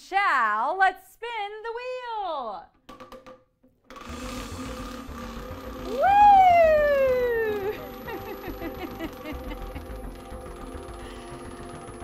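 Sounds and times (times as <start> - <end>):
prize wheel clicking: 4.0 - 12.0
woman shouting woo: 5.9 - 8.1.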